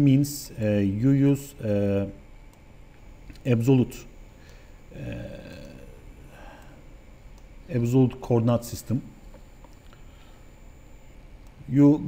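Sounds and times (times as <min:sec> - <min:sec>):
man saying uhh: 0:04.9 - 0:06.4.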